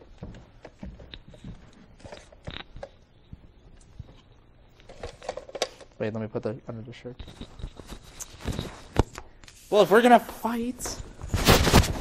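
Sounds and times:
soft handling clicks and rustles: 0.0 - 6.0.

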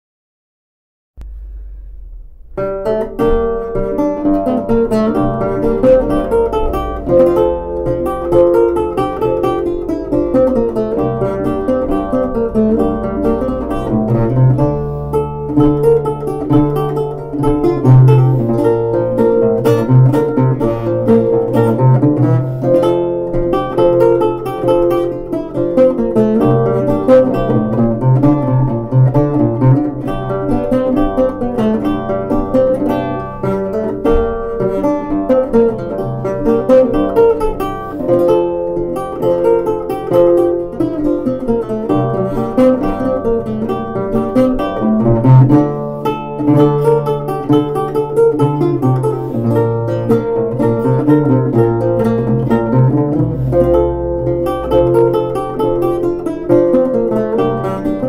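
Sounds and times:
lute played fingerstyle: 1.2 - 58.0.

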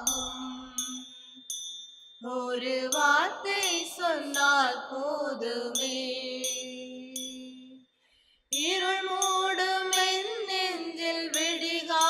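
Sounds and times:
bright chime-like notes: 0.0 - 4.8.

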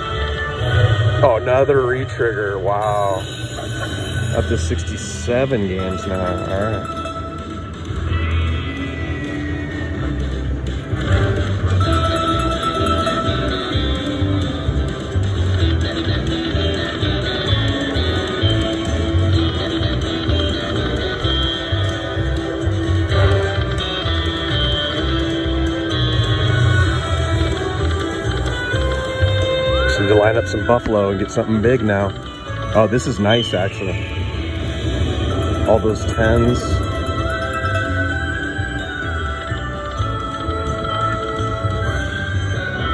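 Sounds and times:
slot machine bonus music: 0.0 - 42.9.

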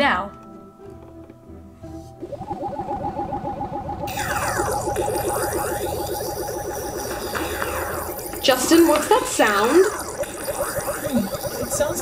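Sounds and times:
sweeping glides: 1.9 - 12.0
cartoon pulsing warble: 2.1 - 12.0.

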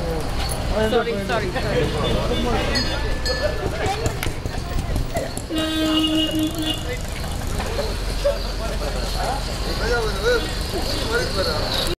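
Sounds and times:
vehicle horn: 5.5 - 7.0.

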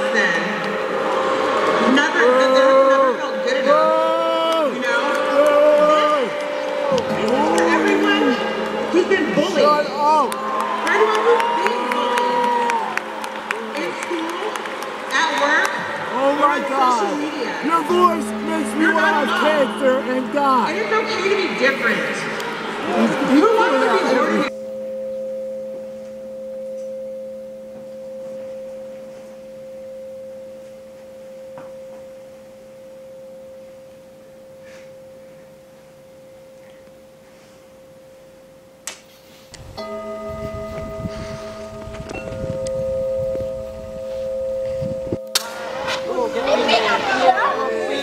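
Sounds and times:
pulsing ringing tone: 17.6 - 22.4, 23.3 - 38.8, 39.7 - 48.0.

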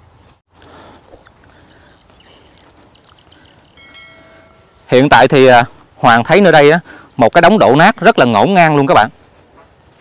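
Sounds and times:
electronic chime: 1.6 - 10.0
thin high-pitched tone: 2.0 - 9.1.

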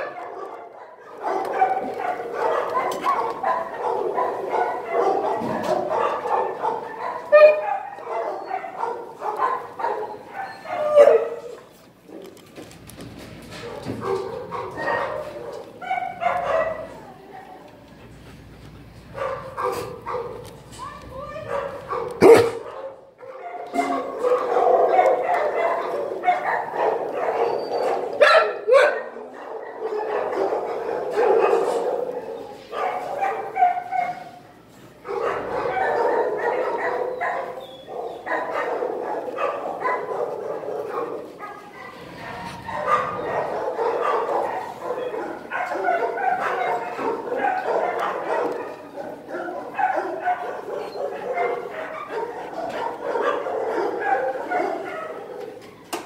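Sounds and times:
dogs barking: 0.0 - 12.4, 13.5 - 17.2, 18.8 - 56.0.

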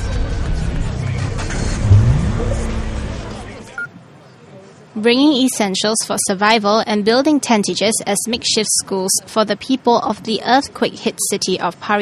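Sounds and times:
low steady musical bed: 0.0 - 3.8
loud low hit: 1.6 - 3.7
rising pitch sound effect: 1.6 - 3.7.

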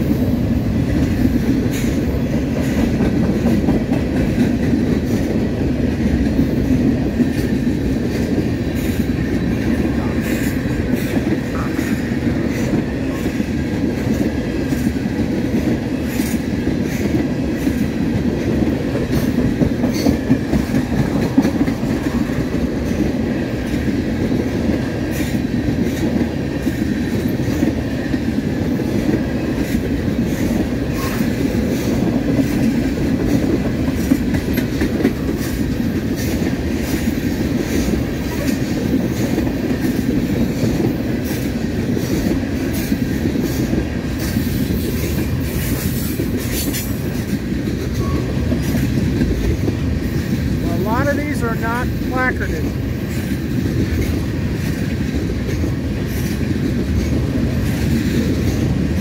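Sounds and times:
freight train rumbling past: 0.0 - 59.0.

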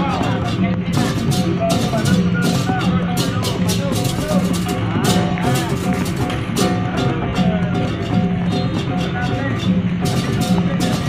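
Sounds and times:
hand cymbals crashing: 0.0 - 11.0
low drum and gong tones: 0.0 - 11.0.

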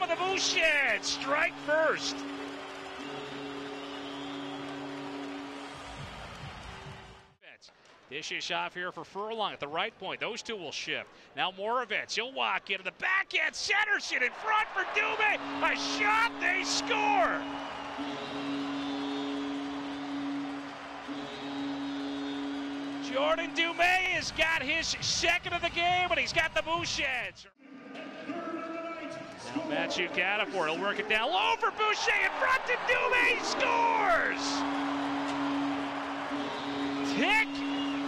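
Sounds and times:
goal horn low tone: 0.0 - 6.2, 14.6 - 24.4, 31.3 - 38.0
crowd cheering: 0.0 - 7.3, 13.8 - 24.8, 29.0 - 38.0
arena music chord: 15.3 - 23.6.

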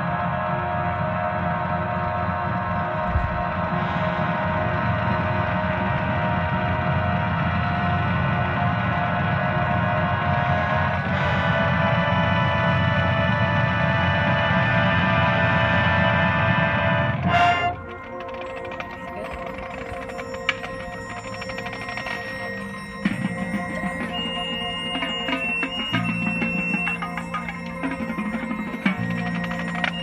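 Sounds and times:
marching band holding chords: 0.0 - 30.0.

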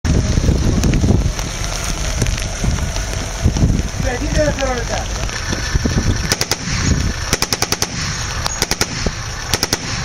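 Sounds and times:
rain hissing: 0.0 - 10.0
wind buffeting microphone: 0.0 - 10.0.

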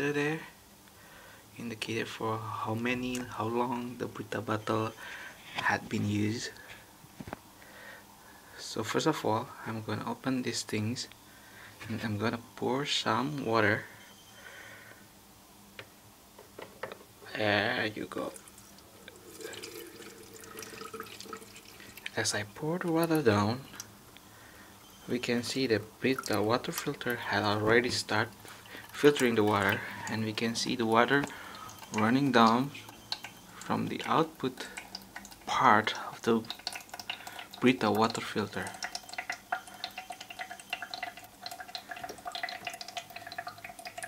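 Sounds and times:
water trickling into plastic reservoir: 18.1 - 23.9, 25.0 - 44.0.

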